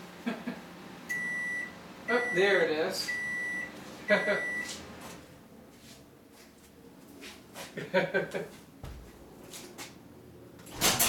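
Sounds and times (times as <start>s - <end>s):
microwave oven beep: 1.1s - 4.8s.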